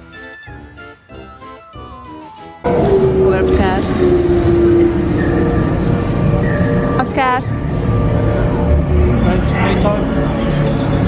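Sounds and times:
droning tone: 2.6 - 11.0
low rumble: 2.7 - 11.0.

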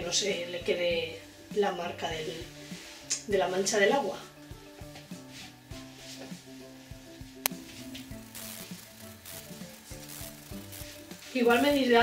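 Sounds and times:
quiet background music: 0.0 - 12.0
sharp click: 7.4 - 10.8
hands rubbing damp fabric: 7.6 - 11.9.

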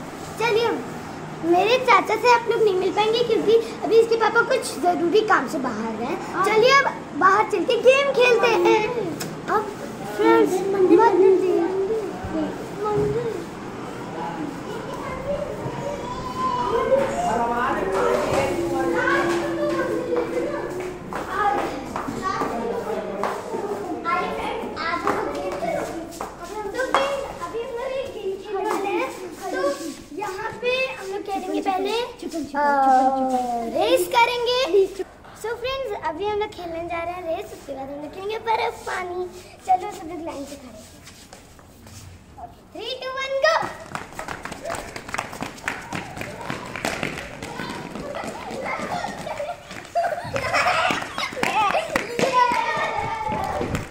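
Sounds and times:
children chattering: 0.0 - 41.0, 42.3 - 53.9
footsteps slapping on marble floor: 16.8 - 30.9, 39.7 - 42.2, 43.2 - 53.9.

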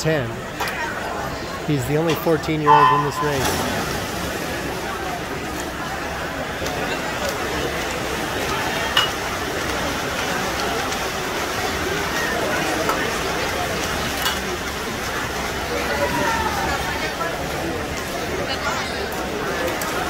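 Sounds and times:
crowd voices talking and calling: 0.0 - 20.0
noisy wash of pool hall: 0.0 - 20.0.

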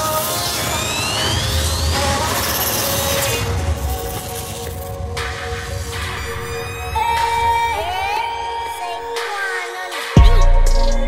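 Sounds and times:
electronic music with held synth tones: 0.0 - 11.0.

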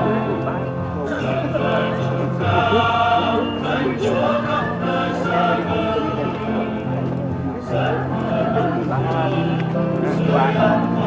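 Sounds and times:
choir singing a hymn: 0.0 - 11.0
steady accompaniment: 0.0 - 11.0.

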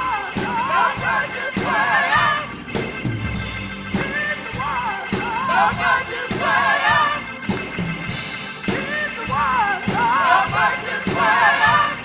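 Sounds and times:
person singing gospel: 0.0 - 2.5, 4.0 - 7.3, 8.7 - 12.0
drum kit and cymbals: 0.0 - 12.0
organ: 0.0 - 12.0.

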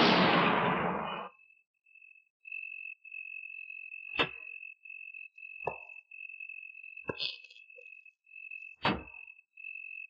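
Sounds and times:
cricket trilling: 1.3 - 10.0.

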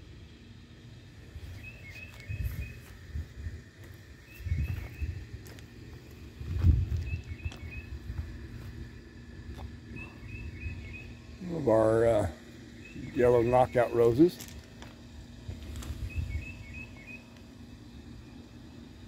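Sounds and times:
songbird chirping: 0.1 - 18.8
low microphone rumbles: 4.4 - 11.4.

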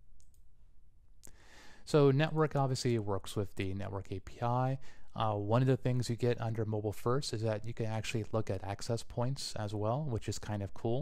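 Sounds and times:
computer mouse click: 0.2 - 0.5
breath in: 1.2 - 1.9, 4.8 - 5.1.

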